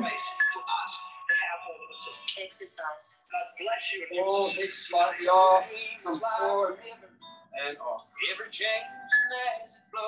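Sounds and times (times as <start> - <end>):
man speaking: 0.0 - 1.0, 3.3 - 6.9, 7.6 - 10.0
background music with held notes: 4.2 - 10.0.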